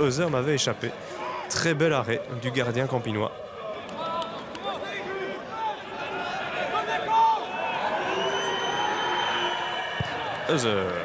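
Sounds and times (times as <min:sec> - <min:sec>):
small crowd: 0:00.0 - 0:11.0
players shouting: 0:03.3 - 0:11.0
long high whistle: 0:07.7 - 0:10.1.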